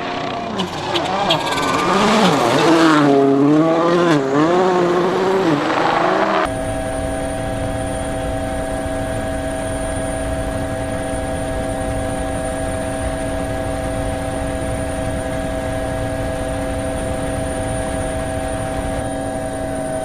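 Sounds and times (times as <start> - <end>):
rally car engine revving: 0.0 - 6.5
helicopter droning: 0.0 - 20.0.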